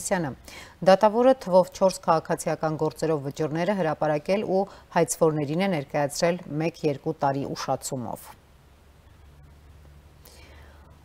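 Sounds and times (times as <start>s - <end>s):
faint low hum: 0.0s - 11.0s
soft breath-like hiss: 0.4s - 0.8s, 10.1s - 11.0s.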